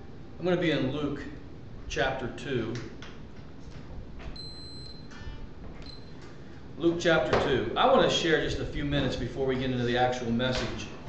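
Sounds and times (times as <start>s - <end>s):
high steady beep: 4.4s - 5.1s.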